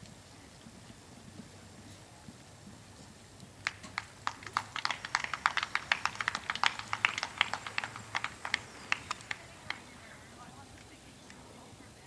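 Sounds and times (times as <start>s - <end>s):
people clapping: 3.6s - 11.4s.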